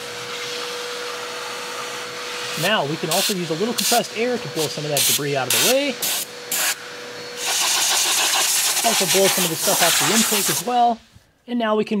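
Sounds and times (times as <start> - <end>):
vacuum cleaner running: 0.0 - 11.2.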